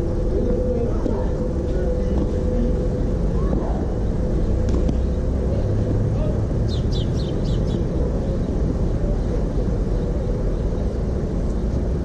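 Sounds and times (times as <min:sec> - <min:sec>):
faint steady hum: 0:00.0 - 0:12.0
steady low rumble: 0:00.0 - 0:12.0
faint distant voices: 0:00.2 - 0:12.0.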